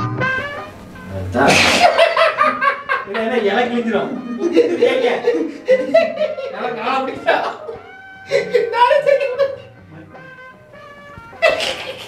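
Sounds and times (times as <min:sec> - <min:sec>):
background music: 0:00.0 - 0:12.0
man laughing heartily: 0:01.4 - 0:03.2, 0:04.1 - 0:06.6, 0:07.5 - 0:09.7, 0:11.3 - 0:12.0.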